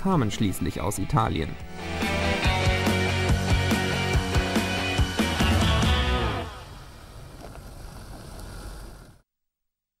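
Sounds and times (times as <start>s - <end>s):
rock music: 1.6s - 6.7s
car driving on gravel: 6.0s - 9.2s.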